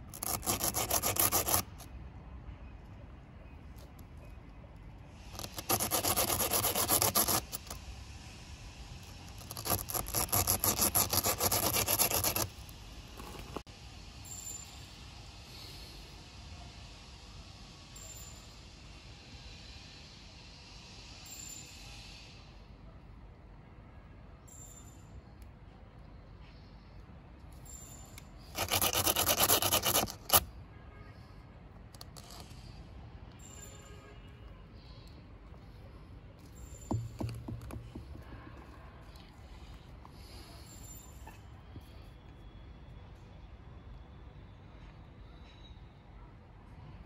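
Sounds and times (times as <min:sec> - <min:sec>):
plug rasping against tire rubber: 0:00.1 - 0:01.9, 0:05.3 - 0:07.8, 0:09.3 - 0:13.6, 0:28.5 - 0:30.4, 0:31.9 - 0:32.6, 0:36.4 - 0:39.3.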